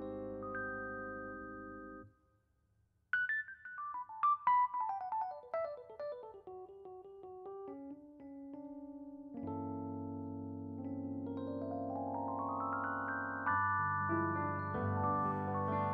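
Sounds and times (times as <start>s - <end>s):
jazz piano: 0.0s - 2.0s, 4.2s - 15.9s.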